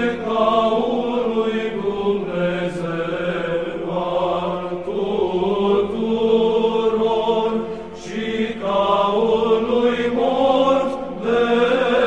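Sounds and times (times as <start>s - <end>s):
slow sung chant melody: 0.0s - 12.0s.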